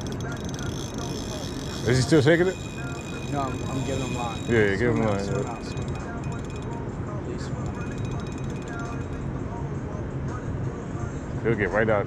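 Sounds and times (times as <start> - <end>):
fishing reel drag ticking: 0.0 - 6.8, 7.4 - 9.2.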